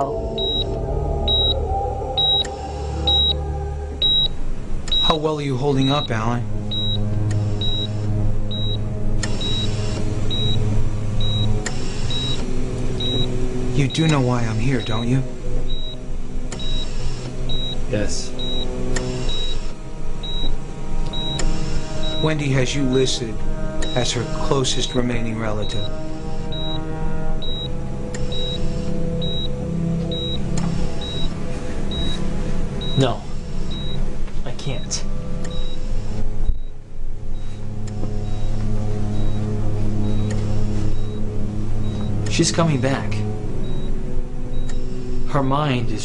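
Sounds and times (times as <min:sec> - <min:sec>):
patient monitor beeping: 0:00.0 - 0:45.1
low music score: 0:00.0 - 0:46.0
steady low hum: 0:00.0 - 0:46.0.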